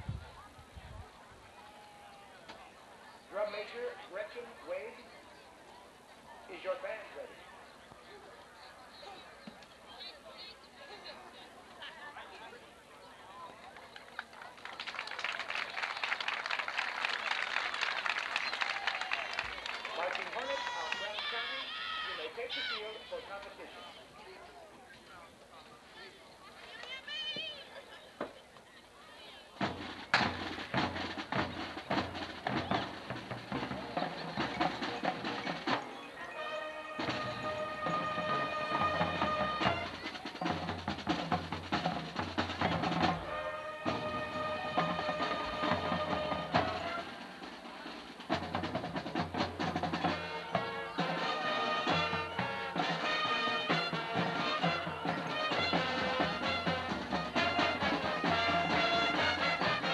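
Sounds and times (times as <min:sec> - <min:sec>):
marching band with brass and drums: 0:01.4 - 0:05.2, 0:06.2 - 0:12.5, 0:14.2 - 0:24.2, 0:29.0 - 0:59.9.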